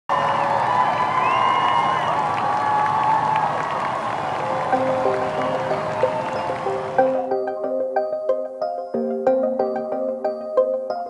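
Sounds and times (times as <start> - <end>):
crowd cheering and applauding: 0.1 - 7.4
long high calls: 0.1 - 7.4.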